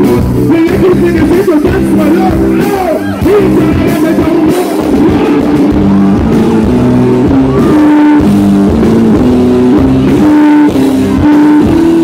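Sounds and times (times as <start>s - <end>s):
live rock band playing: 0.0s - 12.0s
held electric guitar notes: 1.8s - 12.0s.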